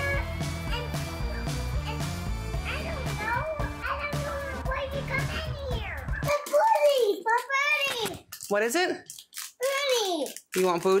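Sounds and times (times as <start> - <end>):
background music: 0.0 - 6.6.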